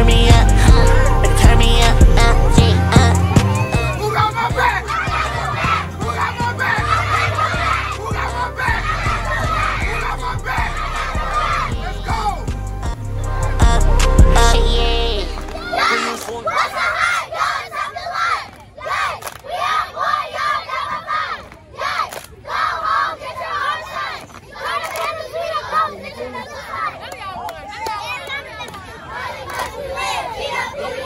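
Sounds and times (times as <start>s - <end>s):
recorded music: 0.0s - 16.9s
girls chanting a cheer: 0.0s - 31.0s.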